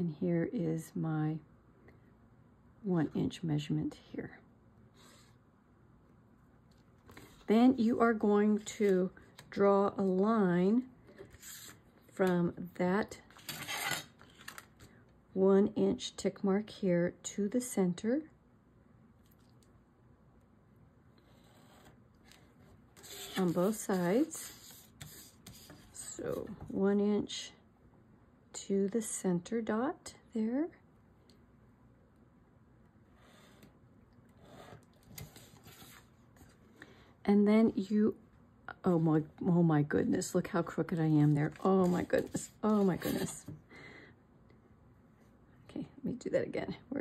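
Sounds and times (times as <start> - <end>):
ruler scraping on card: 11.2 - 11.8, 23.0 - 26.1.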